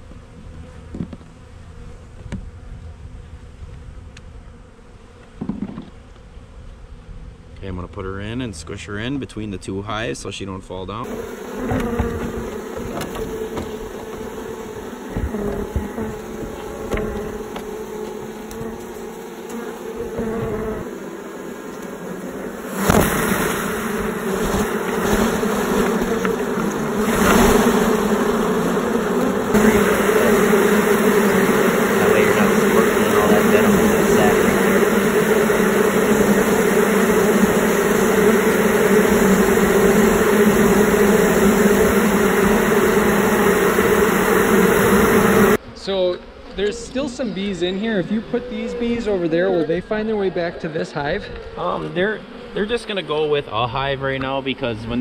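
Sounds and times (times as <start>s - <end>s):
bees buzzing: 10.7s - 55.0s.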